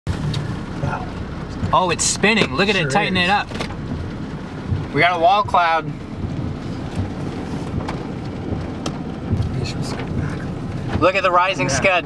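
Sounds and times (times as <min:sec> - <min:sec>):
low thunder rumble: 0:00.1 - 0:11.8
rain: 0:00.1 - 0:12.0.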